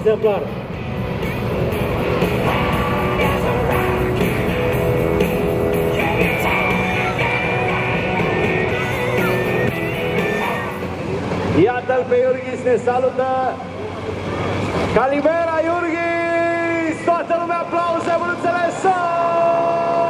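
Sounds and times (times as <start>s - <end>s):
music with singing: 1.0s - 11.6s.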